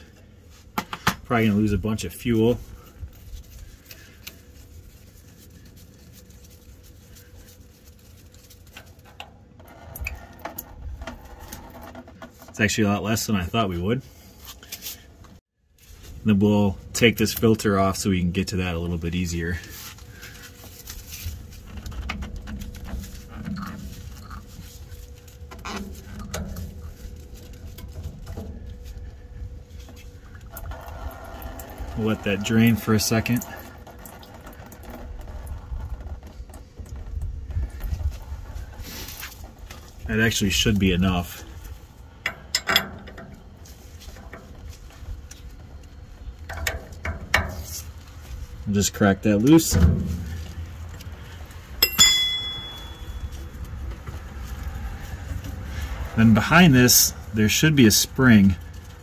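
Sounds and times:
low steady rumble: 15.8 - 59.0.

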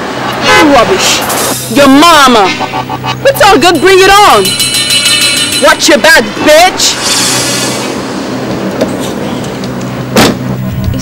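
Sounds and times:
loud rush of noise: 0.0 - 11.0
sharp thump: 10.2 - 10.5.

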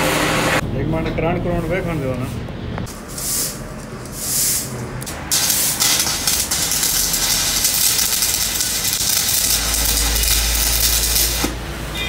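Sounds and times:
welding arc crackling and hissing: 2.8 - 11.8.

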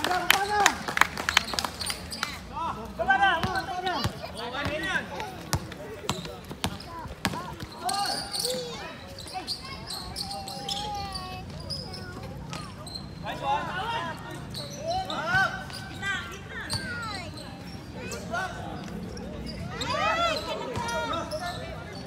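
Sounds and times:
players calling out: 0.0 - 22.0
basketball bouncing on hard court: 5.5 - 7.8.

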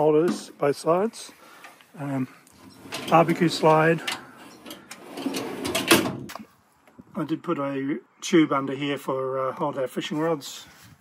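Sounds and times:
metal tray sliding scrape: 2.6 - 6.1.

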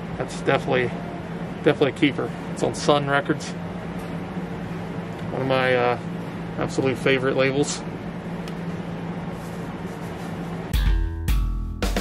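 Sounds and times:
low hum with hiss: 0.0 - 11.1.

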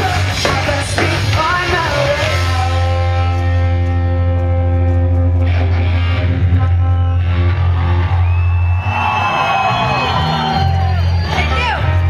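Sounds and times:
live rock band playing: 0.0 - 12.0
crowd whooping: 6.8 - 12.0.

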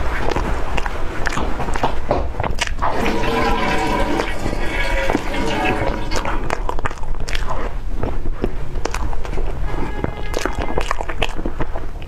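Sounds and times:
chewing: 0.0 - 12.0
wet mouth sounds: 0.0 - 12.0
steady tone: 9.3 - 11.8.

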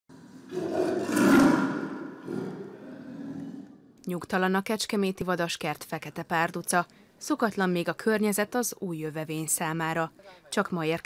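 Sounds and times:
big cat growling: 0.1 - 4.0.

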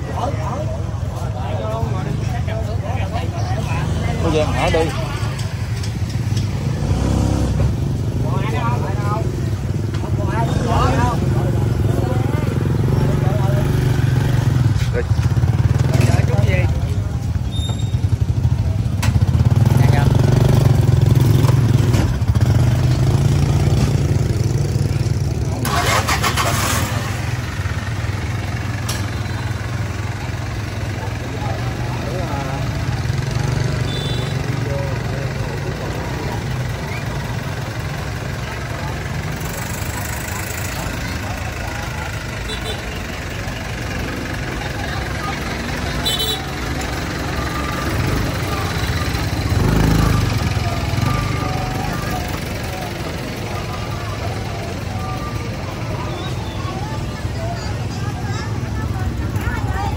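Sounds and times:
people talking: 0.0 - 59.9
vehicle engine running: 0.0 - 59.9.

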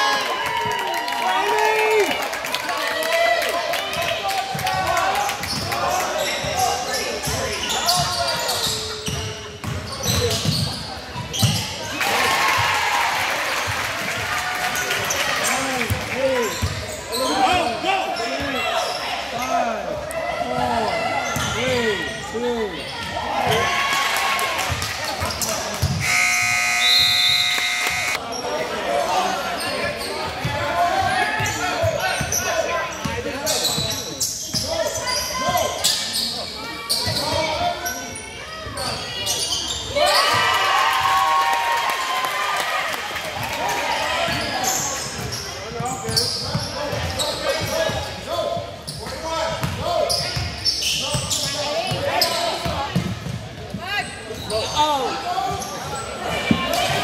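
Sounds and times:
players and spectators voices: 0.0 - 57.0
sneakers squeaking: 5.4 - 12.0, 14.8 - 19.5, 20.6 - 23.7, 25.1 - 28.6, 29.5 - 40.5, 43.7 - 57.0
scoreboard horn: 26.0 - 28.2.

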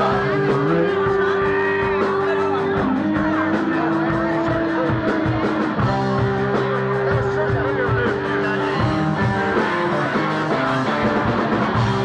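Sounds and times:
electric guitar long sliding notes: 0.0 - 12.0.

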